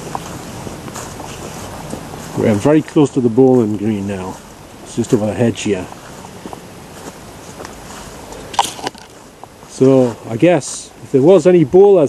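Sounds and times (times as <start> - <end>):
faint footsteps outdoors: 0.0 - 12.0
low background hiss: 0.0 - 12.0.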